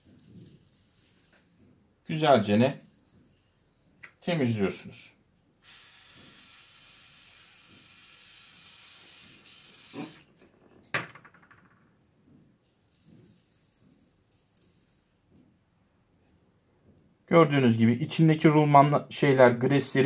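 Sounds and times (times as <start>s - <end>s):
faint handling sounds: 0.0s - 4.3s
aerosol spray hissing: 5.6s - 10.2s.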